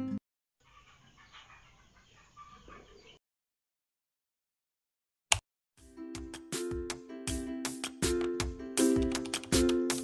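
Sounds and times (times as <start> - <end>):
faint chicken clucking: 0.6 - 3.2.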